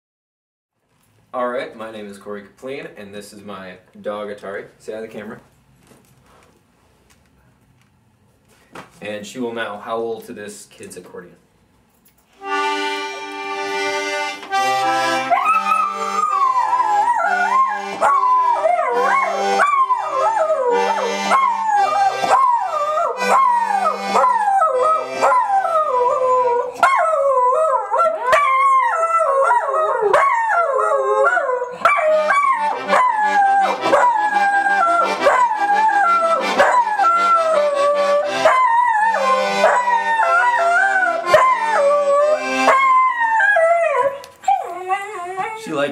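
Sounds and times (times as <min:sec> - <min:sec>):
toy accordion chords: 0:12.4 - 0:26.0, 0:31.9 - 0:42.9
dog howling: 0:15.3 - 0:45.8.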